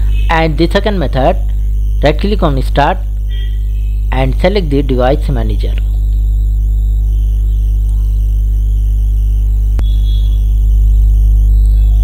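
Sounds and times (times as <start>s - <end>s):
bass-heavy electronic music: 0.0s - 12.0s.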